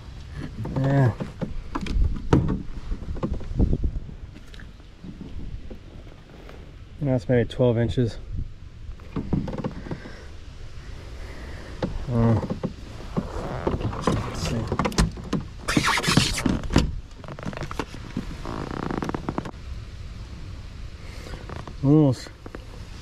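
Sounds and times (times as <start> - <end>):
knocks and scrapes in kayak: 0.3 - 6.7, 9.0 - 10.4, 11.5 - 19.6, 21.2 - 23.0.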